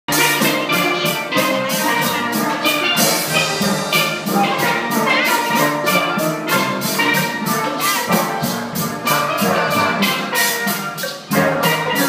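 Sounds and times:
steel band playing: 0.1 - 12.0.

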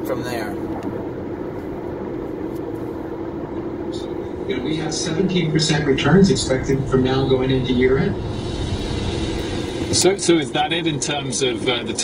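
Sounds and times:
road and wind noise in car: 0.0 - 12.0.

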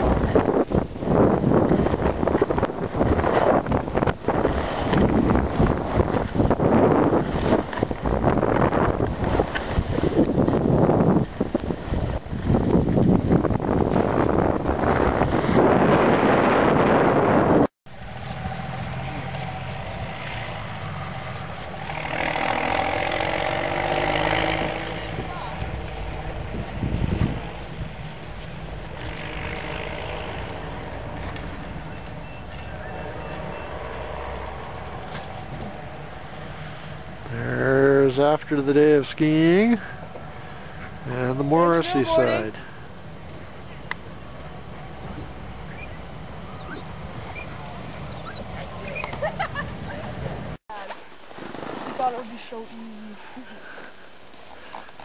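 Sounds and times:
wind buffeting microphone: 0.0 - 19.1, 22.5 - 32.8
people talking: 25.2 - 25.7, 37.3 - 39.8, 41.1 - 42.6, 52.0 - 53.5.

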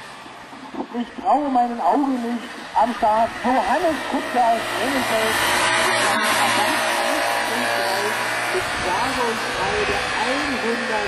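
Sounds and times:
racing car engine running: 1.8 - 11.0.

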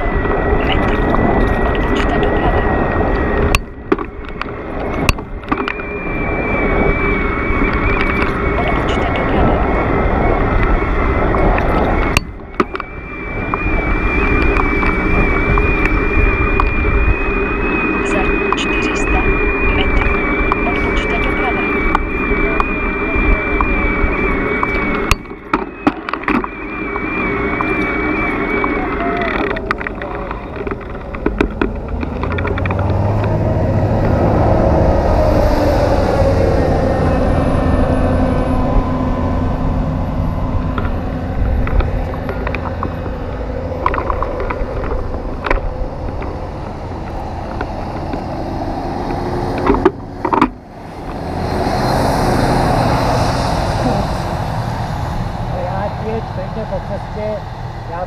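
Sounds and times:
thin steady whine: 0.0 - 58.0
wind on microphone: 0.0 - 58.0
bicycle tyres on paved road: 9.5 - 18.6, 21.7 - 55.6
clicks: 24.6 - 33.4.

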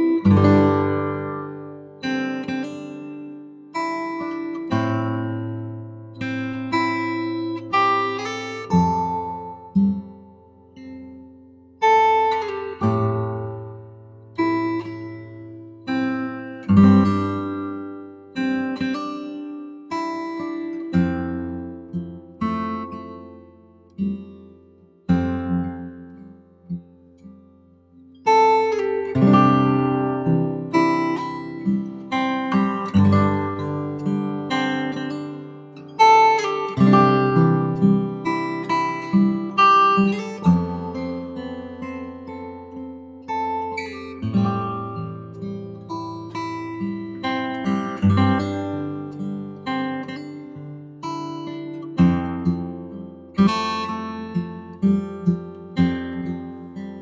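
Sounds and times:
acoustic guitar music: 0.0 - 57.0.

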